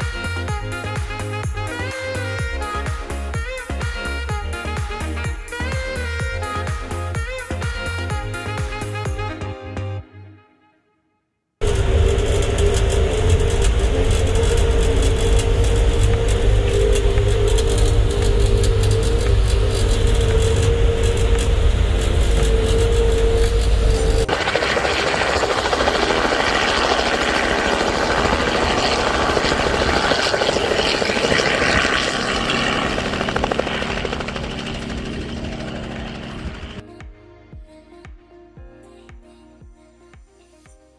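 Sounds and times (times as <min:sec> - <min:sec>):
loud low rumble with hum: 0:11.6 - 0:36.8
small helicopter running: 0:11.6 - 0:36.8.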